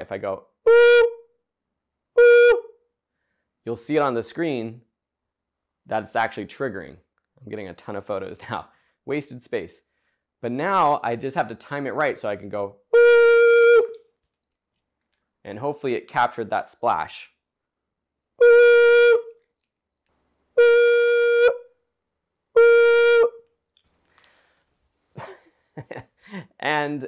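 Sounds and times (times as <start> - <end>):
high-pitched vocal hoot: 13.0 - 14.0, 22.6 - 23.4.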